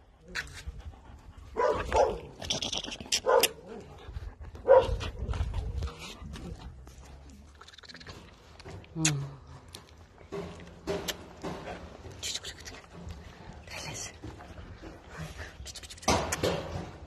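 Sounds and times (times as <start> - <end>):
dogs barking: 1.6 - 2.3, 3.2 - 3.9, 4.6 - 5.3.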